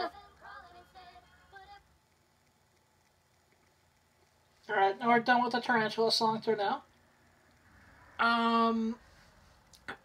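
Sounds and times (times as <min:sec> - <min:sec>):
song from smart speaker: 0:00.0 - 0:02.9.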